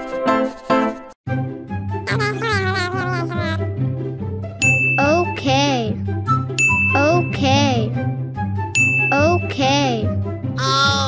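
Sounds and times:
background music: 0.0s - 11.0s
bright ding: 4.6s - 5.3s, 6.6s - 7.4s, 8.8s - 9.6s.

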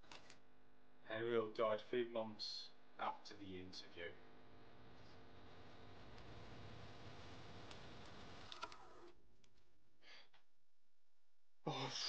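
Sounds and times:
man sighing loudly: 11.6s - 12.0s.

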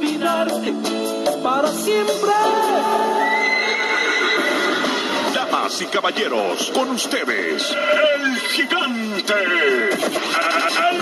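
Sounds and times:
horse whinnying: 3.2s - 5.4s, 7.6s - 8.5s.

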